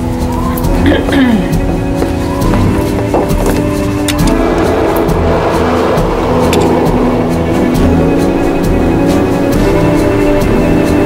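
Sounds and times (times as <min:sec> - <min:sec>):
blizzard wind roaring: 0:00.0 - 0:11.0
music with held notes: 0:00.0 - 0:11.0.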